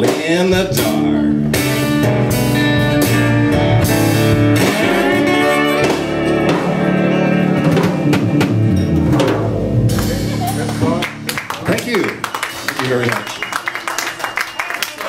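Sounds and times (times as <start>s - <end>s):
guitar: 0.0s - 13.6s
blues band playing: 0.0s - 14.6s.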